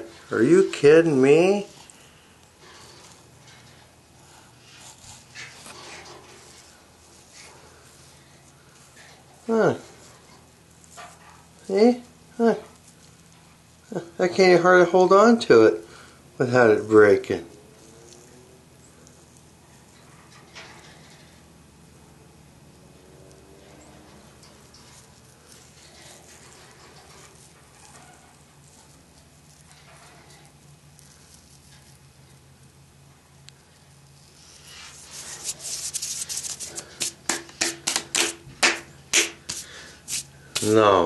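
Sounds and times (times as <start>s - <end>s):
soft rustle: 0.0s - 13.9s, 17.4s - 22.0s, 23.0s - 37.2s, 39.4s - 41.0s
fingers rubbing brittle string: 34.3s - 41.0s.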